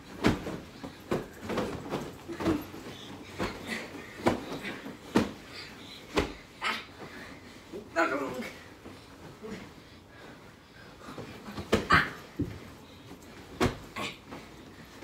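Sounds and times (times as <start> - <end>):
feet landing on mattress: 0.0 - 7.6, 11.1 - 15.0
pillows thudding: 0.0 - 9.7, 11.1 - 15.0.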